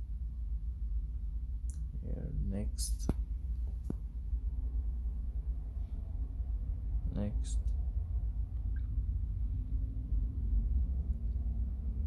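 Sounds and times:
low rumble background noise: 0.0 - 12.0.

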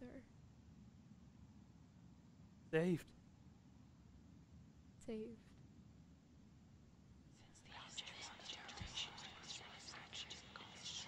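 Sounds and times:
faint whispering: 7.4 - 11.0.

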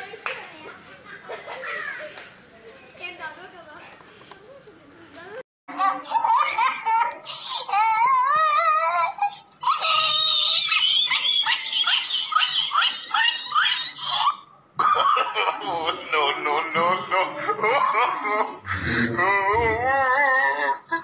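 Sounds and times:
loud laughter: 9.8 - 21.0.

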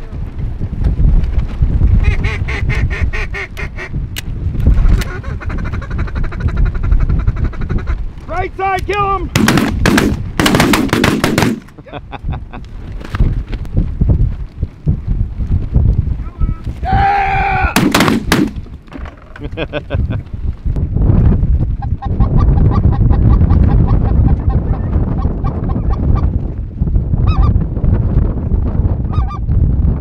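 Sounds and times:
wind rumble on microphone: 0.0 - 30.0
shotgun blasts: 9.3 - 11.7, 17.8 - 18.7.

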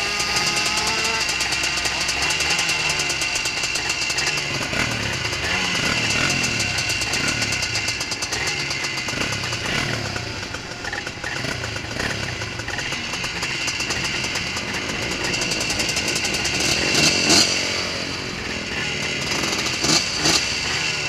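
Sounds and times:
two-stroke engines idling: 0.0 - 21.0.

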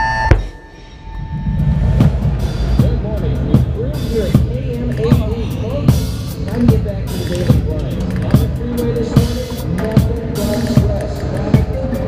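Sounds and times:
sharp low drum strikes: 1.2 - 8.6
drum and bugle corps music: 1.9 - 12.0.

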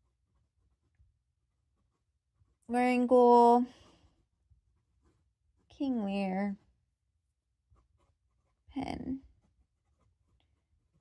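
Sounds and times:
pen scratching on paper: 0.0 - 11.0.

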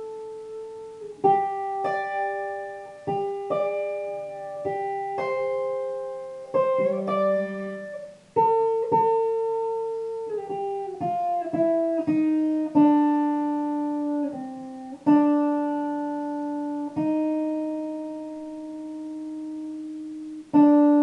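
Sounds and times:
electric guitar melody: 0.0 - 21.0.

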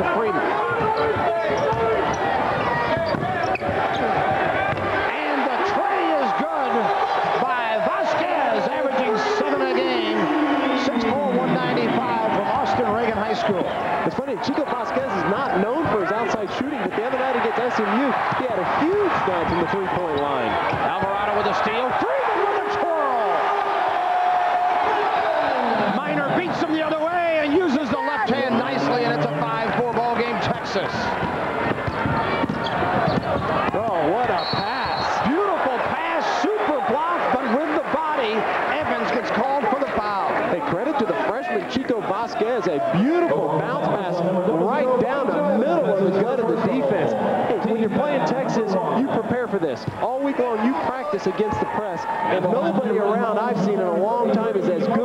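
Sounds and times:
sneaker squeaks: 1.4 - 4.3, 31.8 - 33.5, 34.4 - 35.0.

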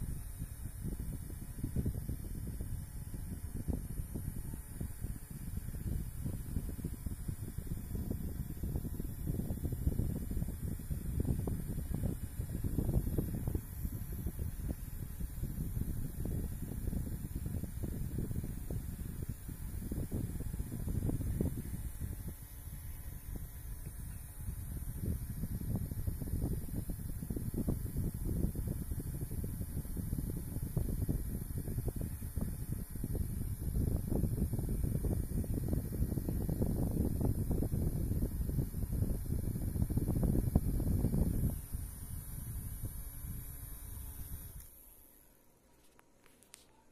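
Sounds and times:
faint high motor whine: 0.0 - 46.9
handheld fan air stream buffeting: 0.0 - 46.9.

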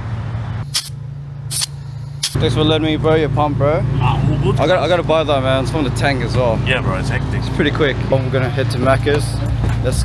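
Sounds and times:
low engine hum: 0.0 - 10.0
compressed air hissing into tyre: 0.6 - 2.4.

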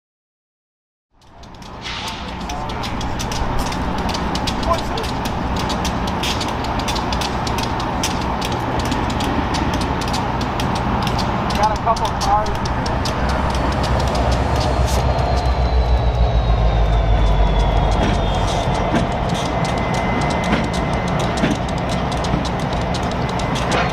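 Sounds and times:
deep rumble: 1.2 - 23.9
diesel locomotives idling: 1.2 - 23.9.

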